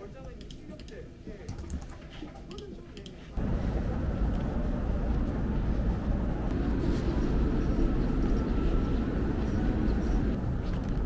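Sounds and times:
keyboard typing clicks: 0.2s - 3.2s.

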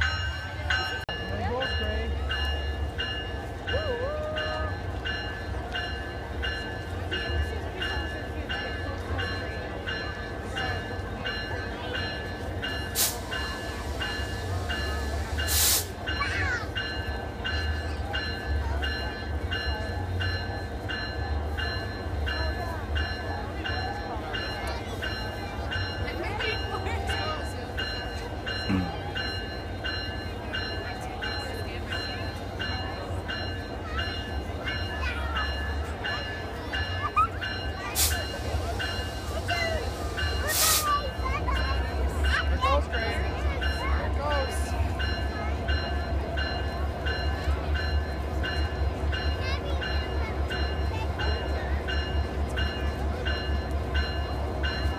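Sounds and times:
locomotive bell ringing: 0.0s - 54.9s
locomotive engine rumble: 0.0s - 54.9s.

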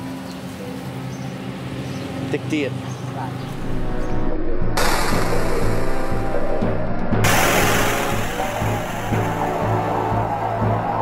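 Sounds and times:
electronic music: 3.6s - 11.0s
rock shattering crash: 7.3s - 9.6s.

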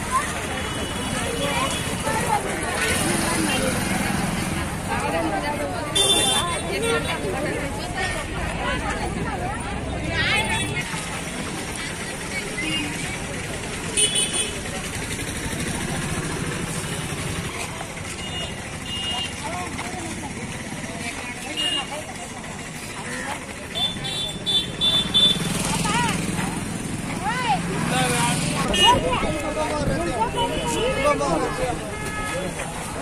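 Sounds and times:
people talking: 0.0s - 33.0s
traffic noise: 0.0s - 33.0s
high vehicle horn beeps: 5.9s - 7.1s, 18.1s - 19.4s, 23.7s - 25.5s, 28.7s - 29.1s, 31.9s - 32.6s.

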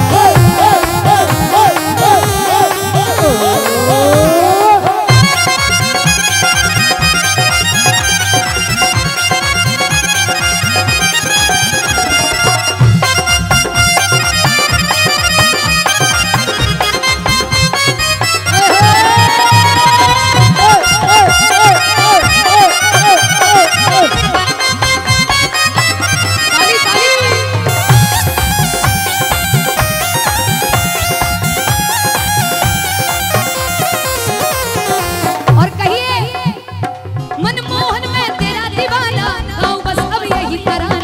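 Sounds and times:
reedy sustained melody: 0.0s - 5.6s
fast steady drum beat: 0.0s - 6.2s
reedy held melody: 0.0s - 36.6s.

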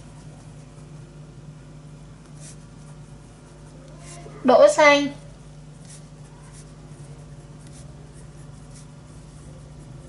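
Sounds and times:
marker pen scratching on paper: 0.0s - 1.3s, 2.2s - 4.7s, 5.6s - 10.0s
low steady hum: 0.0s - 10.0s.

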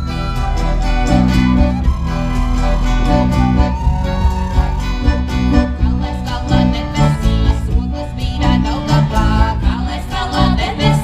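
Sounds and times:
accordion: 0.0s - 11.0s
acoustic guitars: 0.0s - 11.0s
heavy pulsing bass beat: 0.7s - 8.5s
women singing together: 5.5s - 11.0s.

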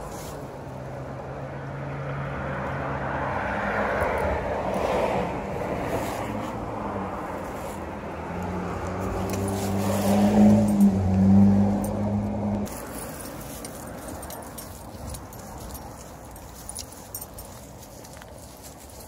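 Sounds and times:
vehicle engine hum: 0.0s - 19.0s.

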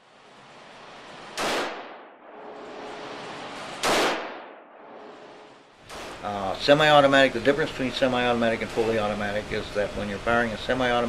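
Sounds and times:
gunshots echoing indoors: 1.4s - 6.2s.

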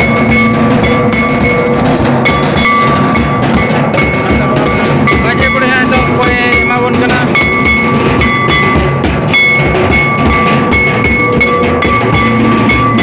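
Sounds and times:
hand drum beating: 0.0s - 13.0s
large drum beaten with stick: 0.0s - 13.0s.

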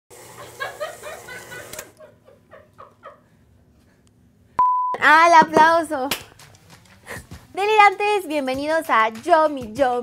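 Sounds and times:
woman laughing: 0.4s - 3.4s.

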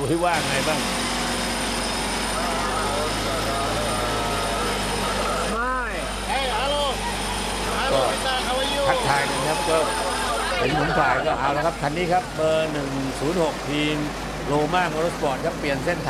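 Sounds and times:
people talking: 0.0s - 0.9s, 2.3s - 16.0s
engine running from inside cab: 0.0s - 16.0s.

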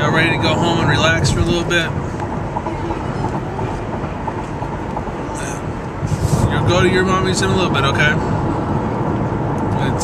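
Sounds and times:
car road noise from inside: 0.0s - 10.0s.

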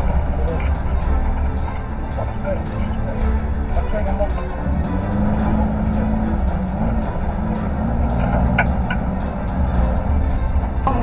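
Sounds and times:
music with steady beat: 0.0s - 11.0s
rally car engine from cabin: 3.8s - 11.0s.

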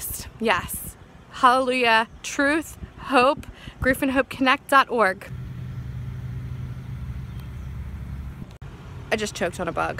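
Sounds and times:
low engine hum: 5.2s - 9.9s.

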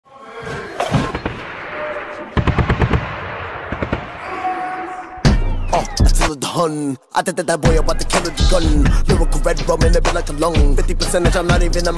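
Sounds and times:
gunshots: 0.8s - 4.4s.

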